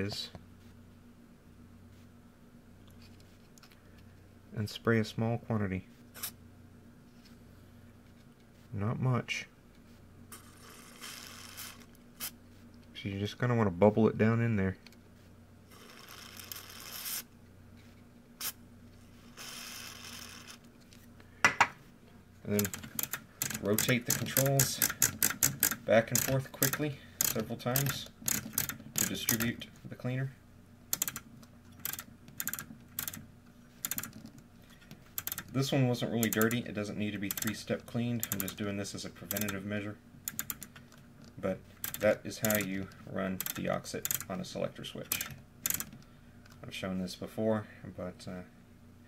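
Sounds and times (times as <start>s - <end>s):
rotary switch clicking: 22.6s - 29.6s, 30.9s - 31.2s, 31.8s - 33.2s, 36.2s - 36.6s, 37.2s - 37.6s, 39.3s - 39.6s, 40.3s - 40.8s, 41.8s - 44.3s, 45.1s - 46.0s.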